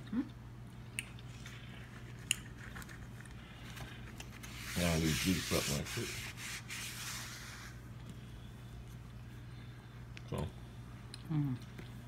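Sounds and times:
person chewing: 0.3s - 4.3s.

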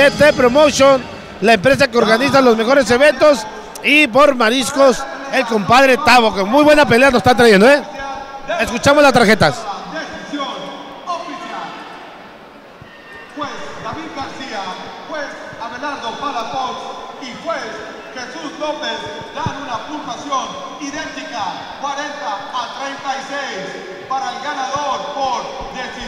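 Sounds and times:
man announcing over public address: 0.0s - 12.0s, 13.4s - 26.0s.

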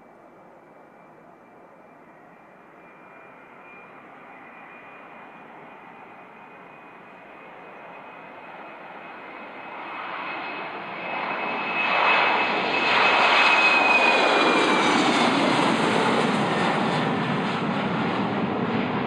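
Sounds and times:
jet taking off: 2.7s - 19.0s.

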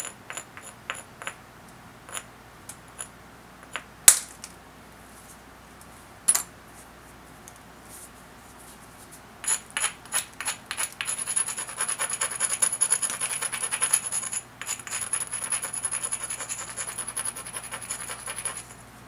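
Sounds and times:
stone scraping knife edge: 0.0s - 1.4s, 9.4s - 18.8s.

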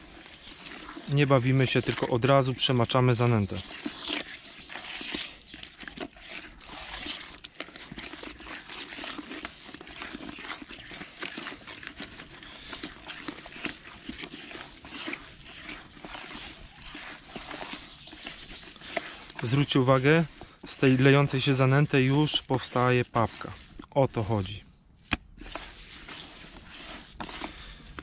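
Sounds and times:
hand squelching wet bait in bucket: 0.0s - 28.0s.

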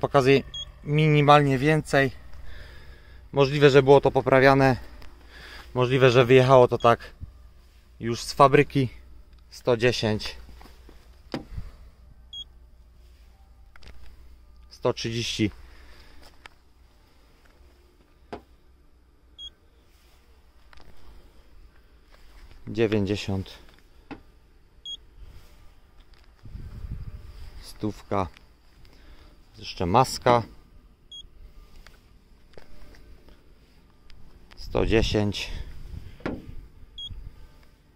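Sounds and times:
short high beep: 0.4s - 0.8s, 37.0s - 37.2s.

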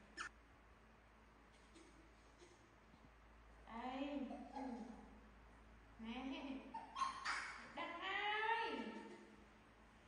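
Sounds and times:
baby monkey squeaking: 0.0s - 0.3s, 6.7s - 7.8s.

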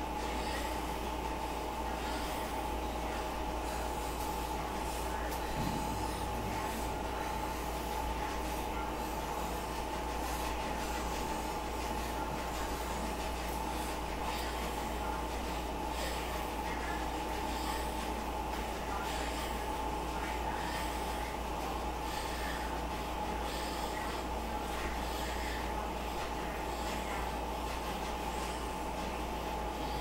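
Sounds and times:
mechanical hum and rumble: 0.0s - 30.0s.

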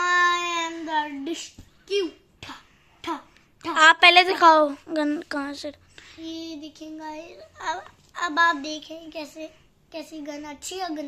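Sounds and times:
child speaking: 0.0s - 11.0s.

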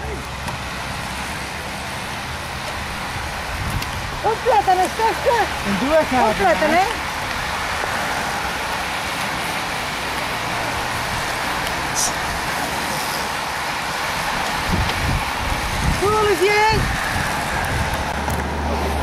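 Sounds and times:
bicycle tyres hissing past: 5.4s - 19.0s.

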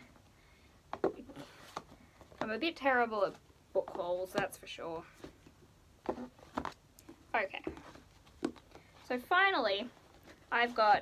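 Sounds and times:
handling paperback books: 0.9s - 11.0s.

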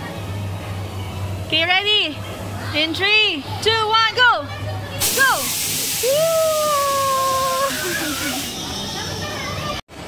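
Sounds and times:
hiss of air: 5.0s - 8.6s.

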